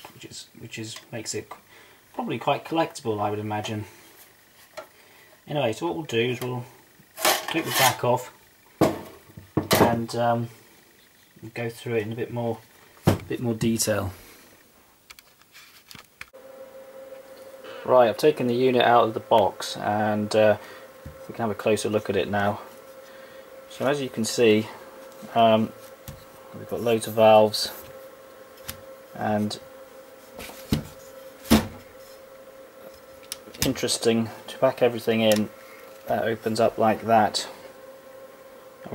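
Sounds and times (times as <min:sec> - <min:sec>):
faint steady amplifier hum: 0:00.0 - 0:38.9.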